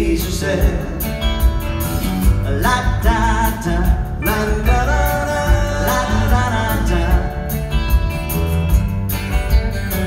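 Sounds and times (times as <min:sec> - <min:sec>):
bass guitar: 0:00.0 - 0:10.0
drum kit beat: 0:00.0 - 0:10.0
electric guitar: 0:00.0 - 0:10.0.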